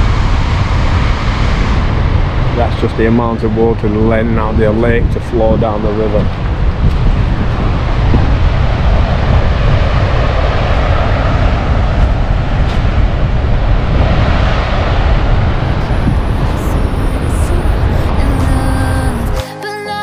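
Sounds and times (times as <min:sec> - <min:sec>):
low rumble: 0:00.0 - 0:19.4.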